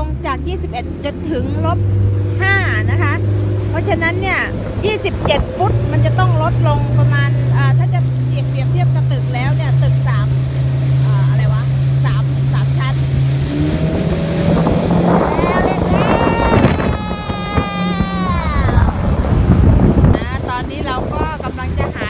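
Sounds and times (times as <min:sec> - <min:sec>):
motorboat engine running: 0:00.0 - 0:22.0
water rushing past hull: 0:00.0 - 0:22.0.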